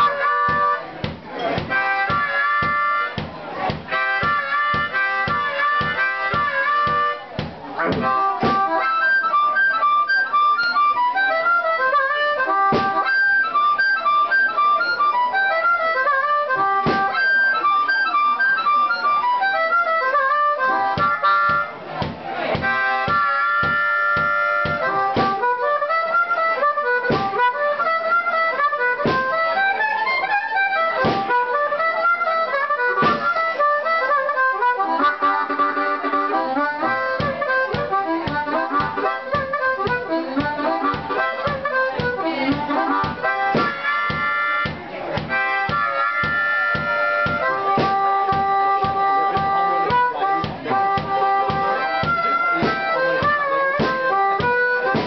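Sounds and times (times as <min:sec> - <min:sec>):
bass drum beat: 0:00.0 - 0:08.7, 0:12.7 - 0:13.0, 0:16.8 - 0:17.1, 0:20.7 - 0:25.5, 0:27.1 - 0:27.5, 0:29.0 - 0:29.4, 0:37.2 - 0:55.0
harmonica playing: 0:00.0 - 0:55.0.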